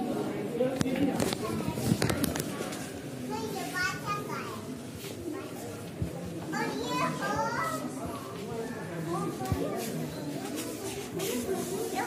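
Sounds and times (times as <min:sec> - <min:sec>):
murmur of people: 0:00.0 - 0:12.0
children talking and calling out: 0:01.0 - 0:12.0.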